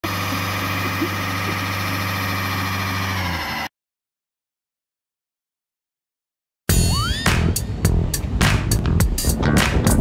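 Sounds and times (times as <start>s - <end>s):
diesel taxi engine idling: 0.0s - 3.7s.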